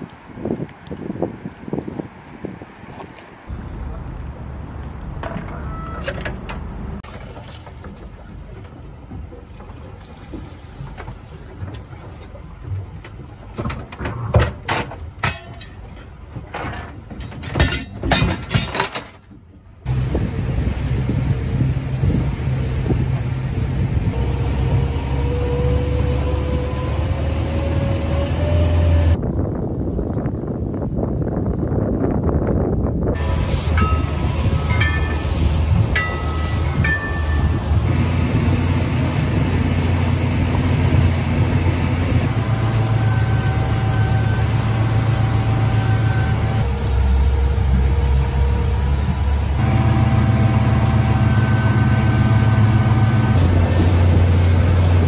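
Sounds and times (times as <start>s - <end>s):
water noise: 0.0s - 31.6s, 33.0s - 55.0s
wind: 0.0s - 55.0s
outboard motors droning: 3.5s - 17.6s, 19.4s - 29.2s, 33.2s - 55.0s.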